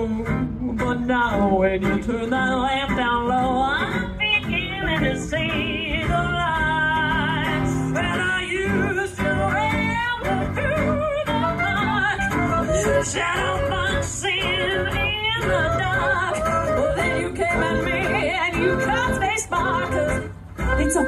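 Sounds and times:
clarinet solo: 10.6s - 21.0s.

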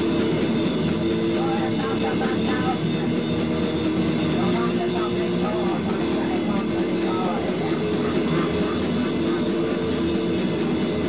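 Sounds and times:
distorted metal guitar: 0.0s - 11.0s.

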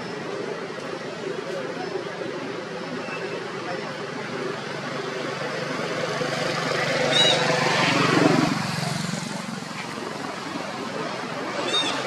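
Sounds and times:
motor engine passing by: 5.9s - 9.7s.

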